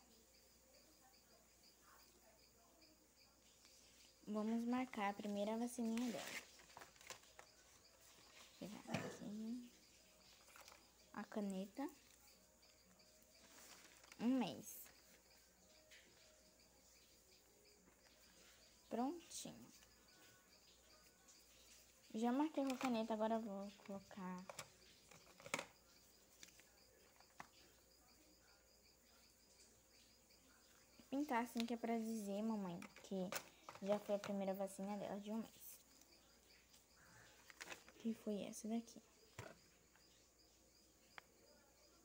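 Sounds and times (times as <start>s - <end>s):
plastic cup of pens clicking: 22.6s - 23.0s, 24.4s - 25.7s, 32.8s - 34.3s.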